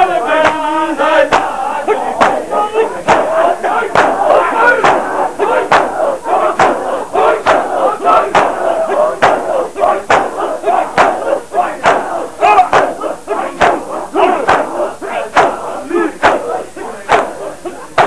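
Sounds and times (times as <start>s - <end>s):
men beating their chests: 0.0s - 18.0s
men chanting and shouting: 0.0s - 18.0s.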